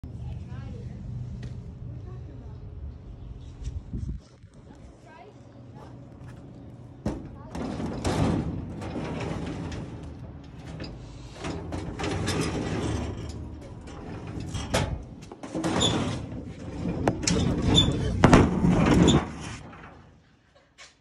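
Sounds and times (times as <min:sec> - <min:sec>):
metal drawers sliding on runners: 0:07.5 - 0:19.9.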